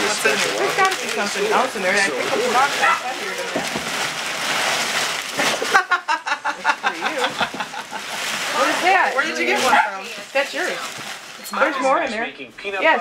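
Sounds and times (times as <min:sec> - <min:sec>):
newspaper rustling and crinkling: 0:00.0 - 0:11.9.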